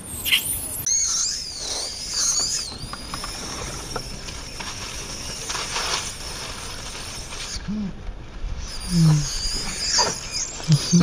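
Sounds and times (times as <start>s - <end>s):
infant monkey screaming: 8.6s - 11.0s.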